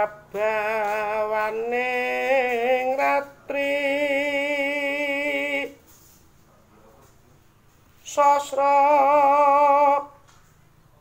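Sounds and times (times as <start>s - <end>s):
man singing unaccompanied: 0.0s - 5.8s, 8.0s - 10.2s.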